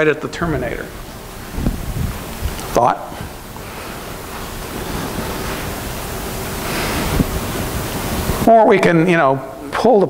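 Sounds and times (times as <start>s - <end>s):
rushing room noise: 0.0s - 10.0s.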